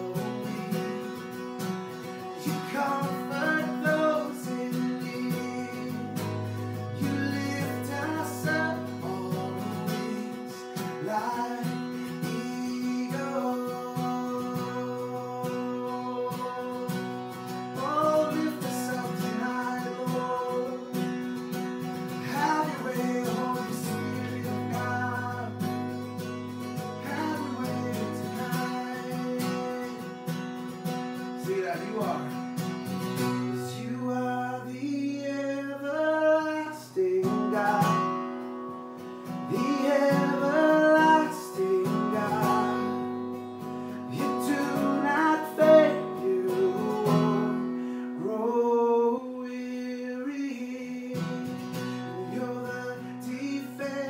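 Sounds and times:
man singing: 0.0s - 38.4s, 39.2s - 54.0s
acoustic guitar strummed: 0.0s - 54.0s.

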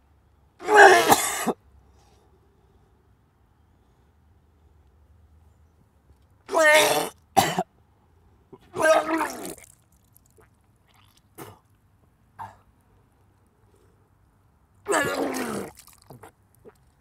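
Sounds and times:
man retching and vomiting: 0.6s - 1.5s, 6.5s - 7.6s, 8.6s - 11.7s, 14.9s - 16.8s.

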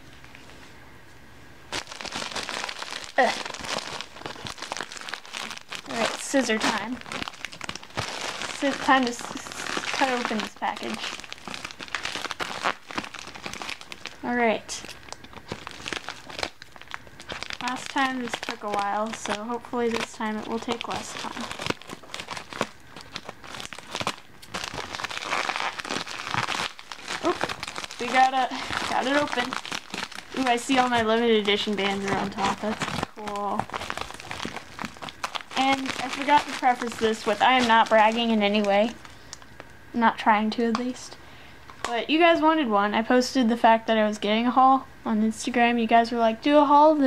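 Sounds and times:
plastic mailer bag crinkling: 1.7s - 39.6s.

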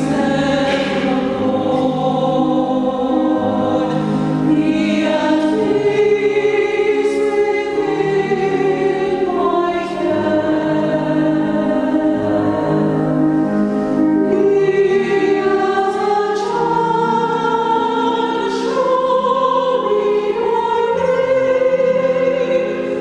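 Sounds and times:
choir singing in harmony: 0.0s - 23.0s.

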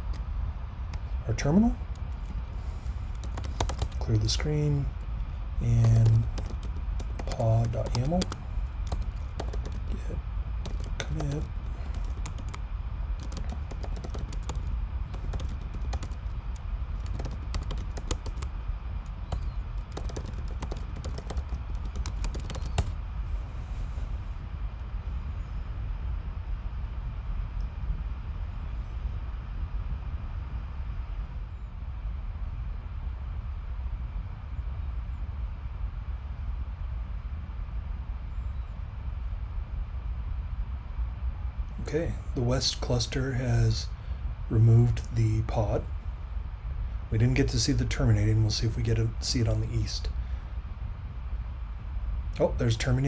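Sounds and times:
low background hum: 0.0s - 53.0s
typing on computer keyboard: 3.1s - 4.2s, 5.6s - 10.0s, 10.6s - 12.6s, 13.2s - 22.9s.

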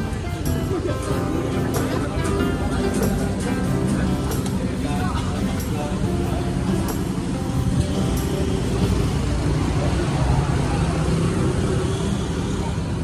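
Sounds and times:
background music: 0.0s - 10.2s
cars and motorbikes passing: 0.0s - 13.0s
voices: 0.0s - 13.0s.

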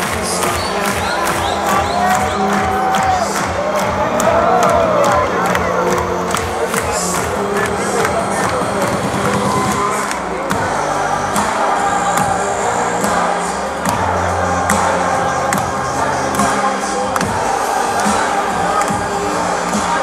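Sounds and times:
electronic dance music: 0.0s - 20.0s.

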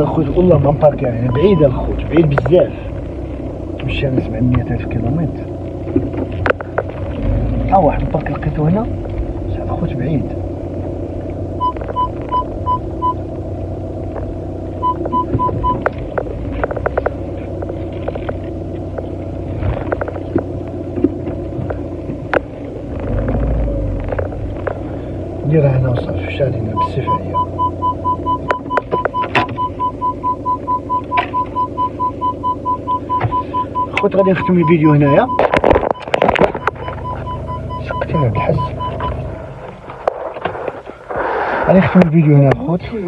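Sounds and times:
car warning chime beeping: 0.0s - 2.7s, 11.5s - 13.4s, 14.8s - 16.3s, 26.0s - 39.4s
car cabin drone: 0.0s - 43.0s.

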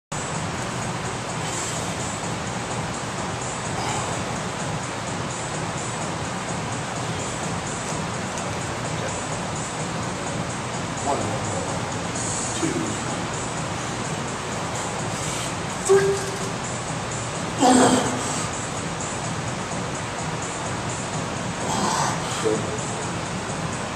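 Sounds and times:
background music: 9.6s - 23.9s.

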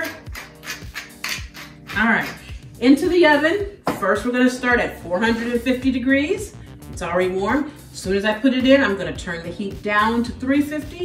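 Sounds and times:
pepper mill grinding: 0.0s - 2.4s
background music with beat: 0.0s - 11.0s.

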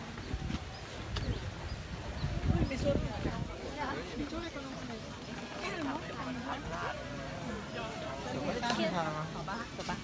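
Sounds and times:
faint voices outdoors: 0.0s - 10.0s.

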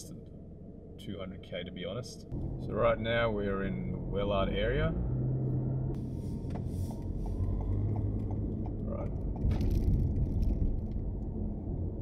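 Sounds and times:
car engine and road rumble: 0.0s - 12.0s
turn signal clicking: 5.9s - 9.8s.

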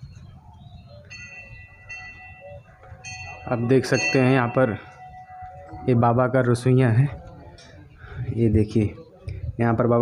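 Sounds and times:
small metal bell ringing: 1.1s - 6.1s.

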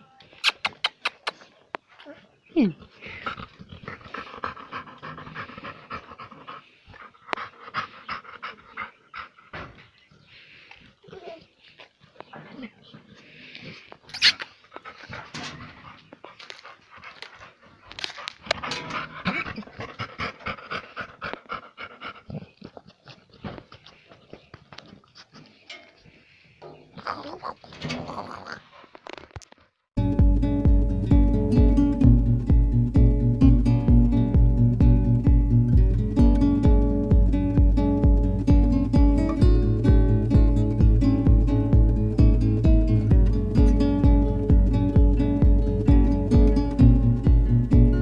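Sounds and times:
dog whining: 14.1s - 14.5s.

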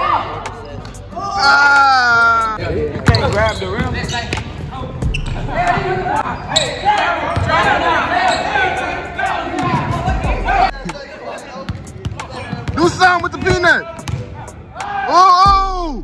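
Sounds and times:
players calling out: 0.0s - 16.0s.

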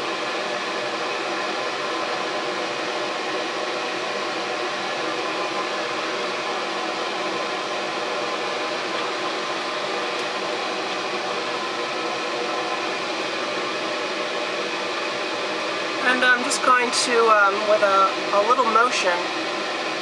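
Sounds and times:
exhaust fan rushing air: 0.0s - 20.0s.

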